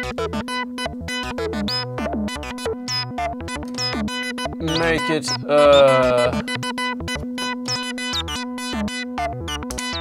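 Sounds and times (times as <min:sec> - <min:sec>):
synthesizer sequence plucky notes: 0:00.0 - 0:10.0.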